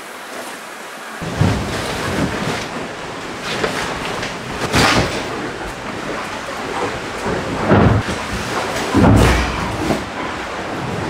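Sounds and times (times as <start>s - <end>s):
rush of water on hull: 0.0s - 11.0s
hull slamming thuds: 1.2s - 11.0s.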